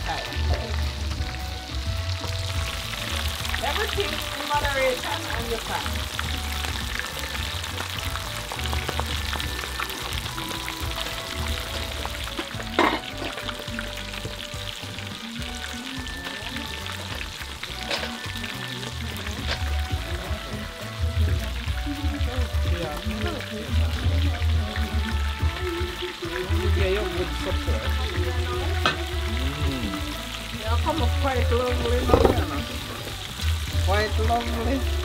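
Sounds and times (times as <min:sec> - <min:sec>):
fish sizzling in bubbling oil: 0:00.0 - 0:35.0.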